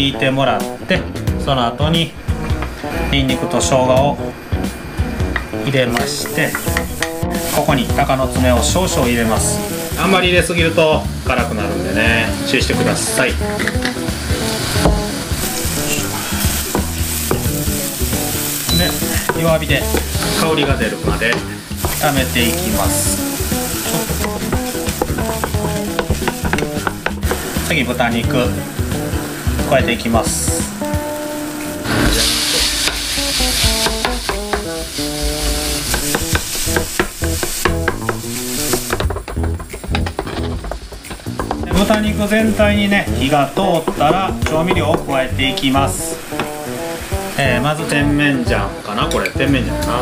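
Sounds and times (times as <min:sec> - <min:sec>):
food sizzling in oil: 0:02.2 - 0:50.0.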